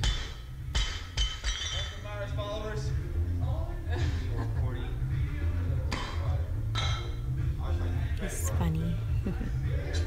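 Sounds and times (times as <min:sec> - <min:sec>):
weight plates clinking and rattling: 0:00.8 - 0:02.0.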